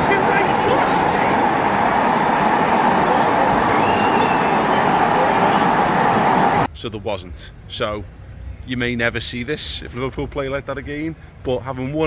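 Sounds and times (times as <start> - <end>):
stadium crowd noise: 0.0 - 6.7.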